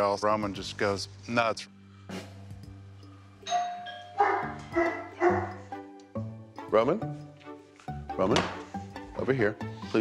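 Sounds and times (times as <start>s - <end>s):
doorbell chime: 3.4s - 4.2s
dog barking: 3.6s - 5.7s.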